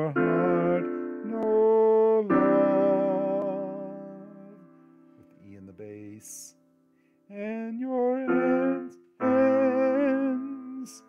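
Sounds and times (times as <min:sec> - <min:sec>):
man singing: 0:00.0 - 0:04.7, 0:07.3 - 0:11.0
piano chords: 0:00.0 - 0:11.0.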